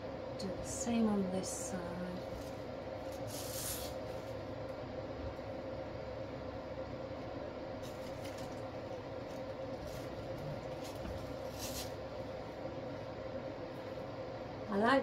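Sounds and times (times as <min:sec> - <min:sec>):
steady hum: 0:00.0 - 0:15.0
artificial flower stems rustling: 0:02.2 - 0:04.5, 0:07.8 - 0:12.2.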